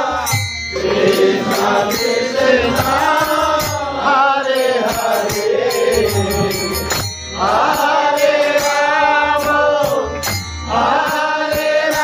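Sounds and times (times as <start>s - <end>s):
devotional chanting: 0.0s - 12.0s
harmonium: 0.0s - 12.0s
percussive strikes: 0.0s - 12.0s.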